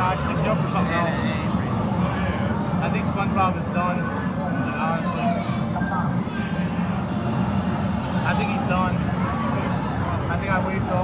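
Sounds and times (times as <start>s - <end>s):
arcade room rumble: 0.0s - 11.0s.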